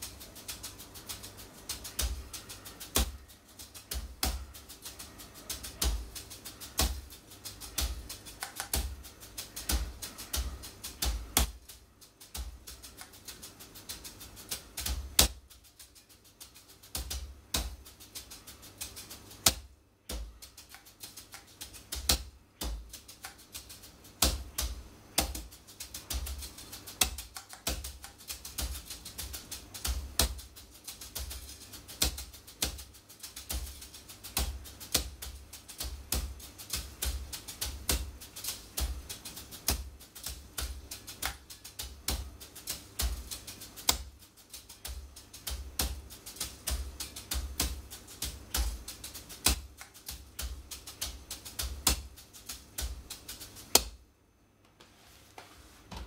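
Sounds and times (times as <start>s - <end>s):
wire brushes on practice pad: 0.0s - 54.0s.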